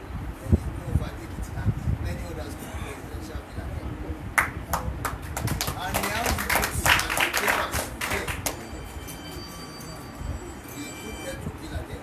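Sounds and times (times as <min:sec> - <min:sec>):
hand claps: 0:04.4 - 0:08.7.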